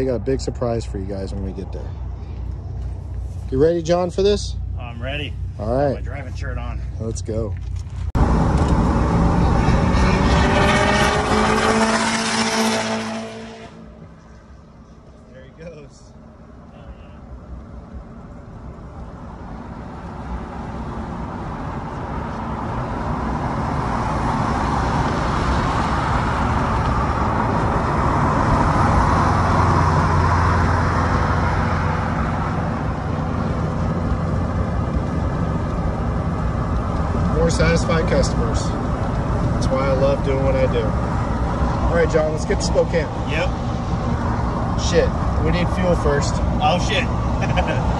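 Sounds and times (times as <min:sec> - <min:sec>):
engine and road noise in cabin: 0:01.2 - 0:47.9
loud engine with rising pitch: 0:08.2 - 0:14.2, 0:19.2 - 0:47.9.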